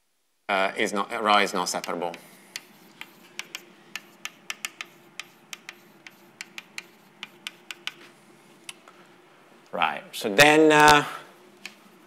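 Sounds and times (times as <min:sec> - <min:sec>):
chalk tapping on blackboard: 0:01.6 - 0:08.1.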